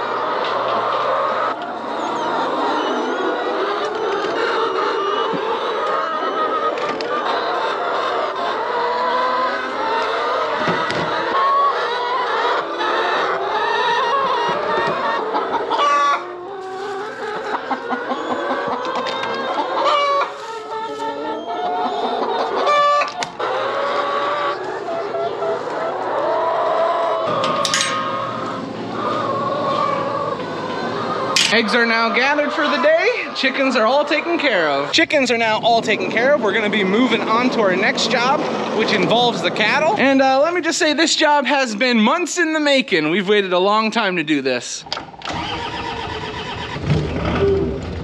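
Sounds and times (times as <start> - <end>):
chickens clucking: 0.0 - 48.0.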